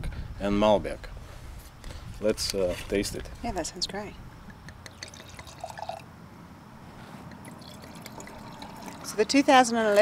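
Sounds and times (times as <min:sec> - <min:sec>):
wine pouring into glass: 0:04.9 - 0:06.0, 0:07.3 - 0:09.5.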